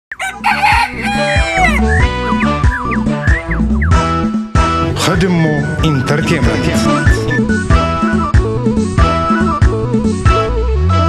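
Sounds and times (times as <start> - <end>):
rooster crowing: 0.1 - 2.6.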